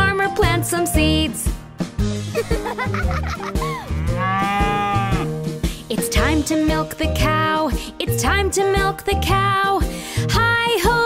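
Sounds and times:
children's song backing track: 0.0 - 3.9, 5.5 - 11.0
cartoon cow mooing: 3.8 - 5.4.

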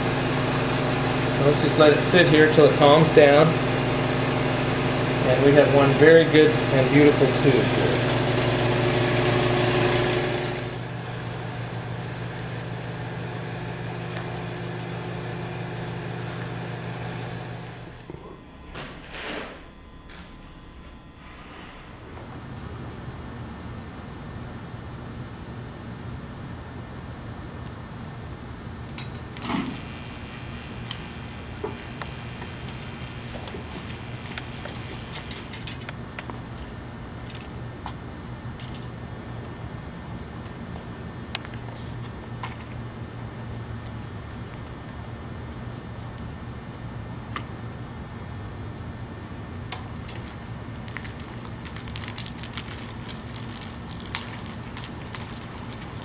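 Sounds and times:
electrical transformer hum: 0.0 - 56.0.

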